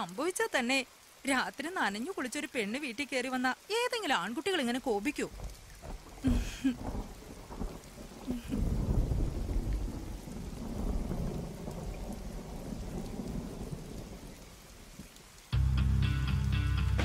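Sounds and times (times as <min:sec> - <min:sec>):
rain: 0:00.0 - 0:17.0
thunder rumble: 0:05.3 - 0:15.0
background music: 0:15.5 - 0:17.0.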